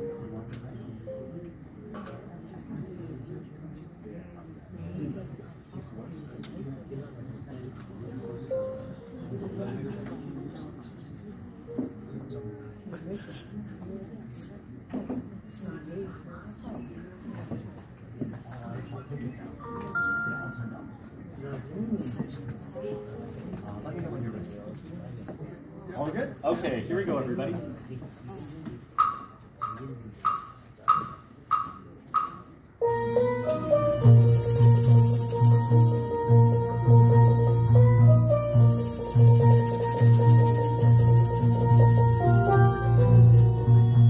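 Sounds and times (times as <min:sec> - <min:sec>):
audience chatter: 0:00.0 - 0:44.0
shaken maracas: 0:13.6 - 0:14.8, 0:15.4 - 0:16.2, 0:20.0 - 0:26.6, 0:33.7 - 0:43.8
count-in clicks: 0:29.0 - 0:32.5
steel pan tune: 0:31.5 - 0:44.0.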